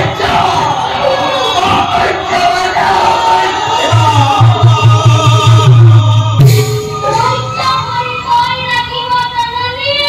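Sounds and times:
high voice singing into microphone: 3.2s - 10.0s.

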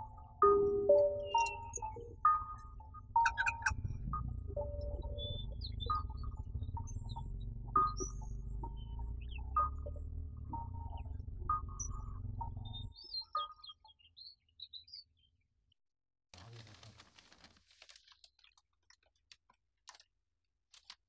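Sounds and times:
chiming bell-like music: 0.0s - 13.9s.

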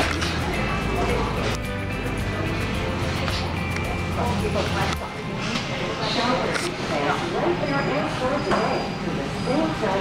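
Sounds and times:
piped store music: 0.0s - 6.9s.

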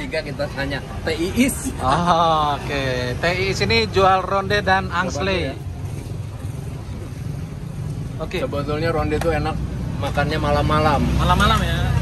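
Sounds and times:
motor traffic rumble: 0.0s - 12.0s.

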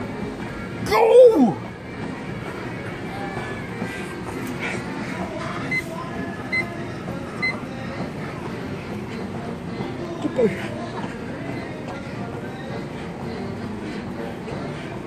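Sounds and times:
gym background rumble: 0.0s - 15.0s.

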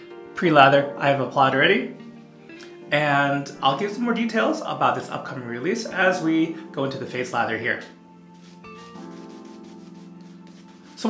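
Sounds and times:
background music chords: 0.0s - 11.0s
shaving brush rubbing lather: 8.4s - 11.0s.

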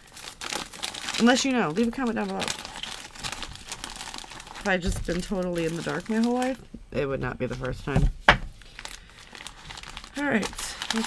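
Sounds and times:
plastic bag crinkling: 0.0s - 6.7s, 7.4s - 11.0s.

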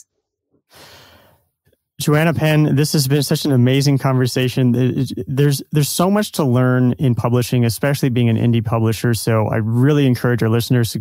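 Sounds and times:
soft breath: 0.7s - 1.5s.

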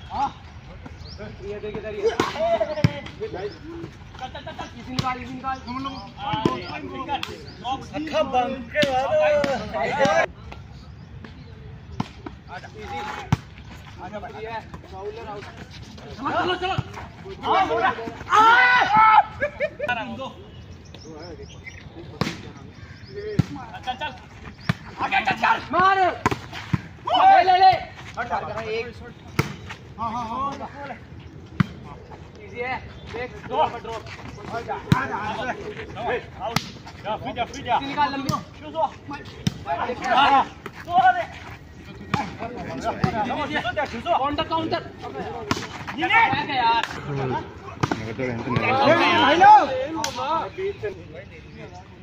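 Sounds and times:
players shouting: 1.5s - 10.3s, 14.1s - 20.5s, 23.1s - 31.1s, 32.8s - 50.9s.

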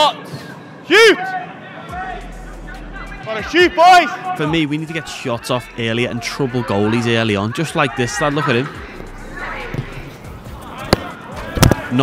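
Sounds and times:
background music: 1.9s - 12.0s
ball impact: 9.0s - 12.0s
football kicked thud: 10.8s - 11.9s.

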